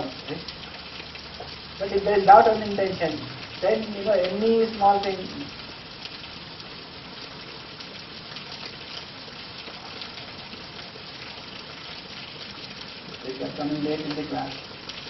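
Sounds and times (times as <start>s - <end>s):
steady background hiss: 0.0s - 8.3s.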